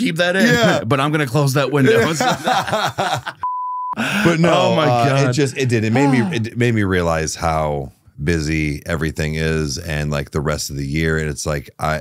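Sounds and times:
men laughing: 0:00.4 - 0:00.9, 0:01.8 - 0:03.4, 0:04.0 - 0:06.5
censor bleep: 0:03.4 - 0:04.0.

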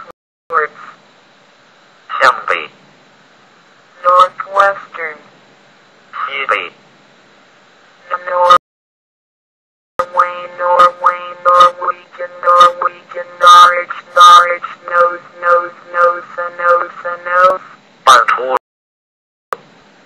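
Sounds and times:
text-to-speech voice reading words: 0:00.0 - 0:01.0, 0:02.1 - 0:02.8, 0:04.0 - 0:05.3, 0:06.1 - 0:06.8, 0:08.0 - 0:08.6, 0:10.0 - 0:18.6.

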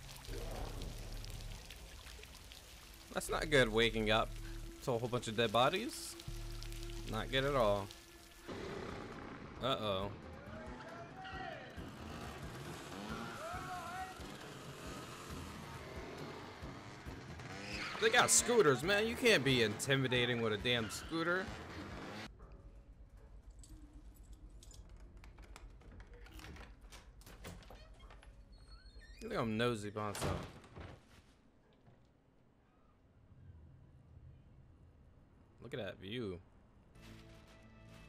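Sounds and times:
rain on a hard wet surface: 0:00.0 - 0:08.5
motor scooters running: 0:10.2 - 0:22.3.

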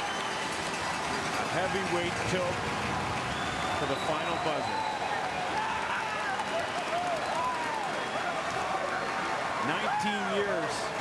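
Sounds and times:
crowd cheering and applauding: 0:00.0 - 0:11.0.

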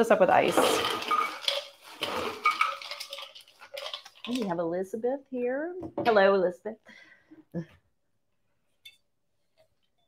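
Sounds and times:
ice cubes clinking in metal shaker: 0:00.2 - 0:04.6.

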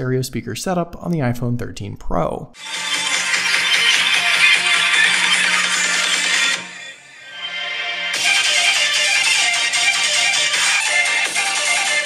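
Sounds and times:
electronic music from phone speakers: 0:02.6 - 0:12.0.

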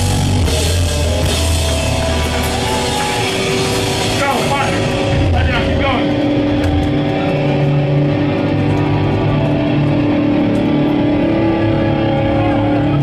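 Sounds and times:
punk band playing live: 0:00.0 - 0:13.0.

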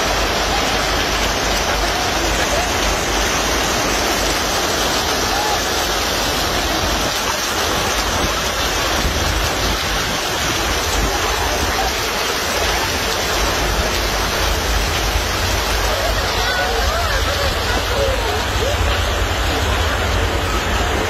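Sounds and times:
heavy rain and hail: 0:00.0 - 0:21.0.

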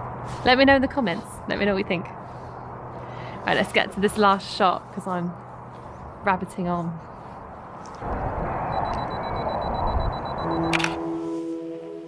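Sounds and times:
wind rumbling on microphone: 0:07.4 - 0:10.5
faint high steady tone: 0:08.6 - 0:10.8
soft music notes: 0:10.8 - 0:12.0.

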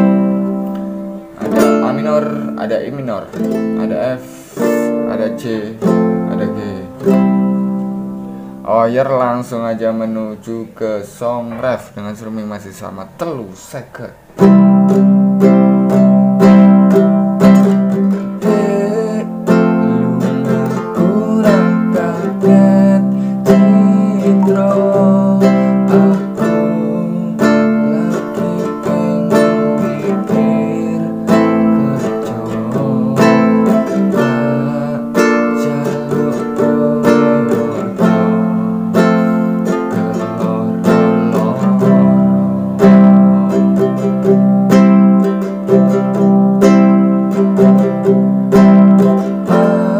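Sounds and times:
acoustic guitar strummed: 0:00.0 - 0:10.4, 0:14.2 - 0:49.9.

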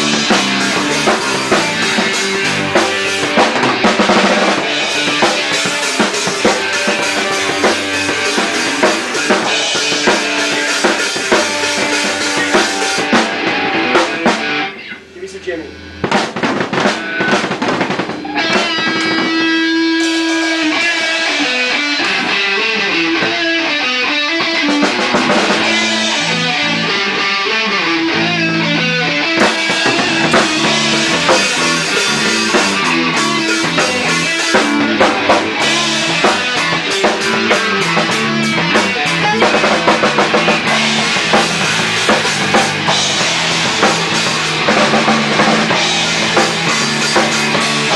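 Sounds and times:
bass guitar: 0:00.0 - 0:47.9
drum kit: 0:00.0 - 0:47.9
electric guitar: 0:00.0 - 0:47.9.

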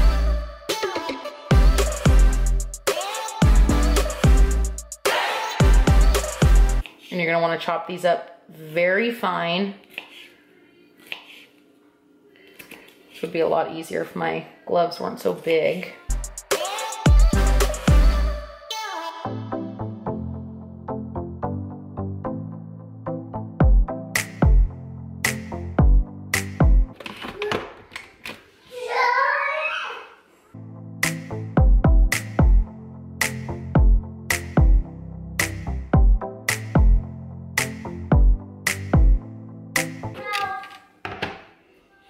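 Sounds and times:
faint background music: 0:06.8 - 0:16.8.

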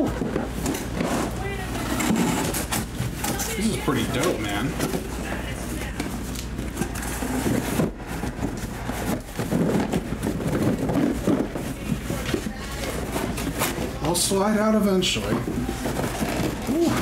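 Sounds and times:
cardboard boxes scraping and rustling: 0:00.0 - 0:17.0.

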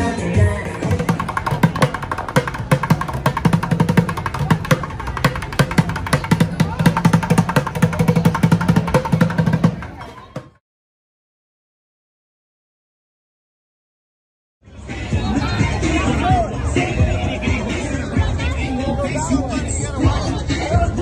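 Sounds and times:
drumming on plastic buckets: 0:00.6 - 0:10.6.

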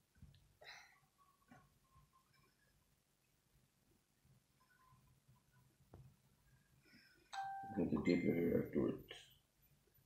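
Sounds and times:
electronic chime: 0:07.4 - 0:08.4
man speaking: 0:07.7 - 0:09.3.

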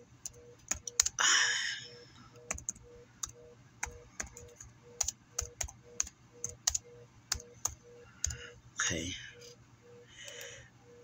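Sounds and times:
keyboard typing clicks: 0:00.0 - 0:01.2, 0:02.3 - 0:08.5, 0:10.2 - 0:10.6
faint pulsing tone: 0:00.0 - 0:11.0.

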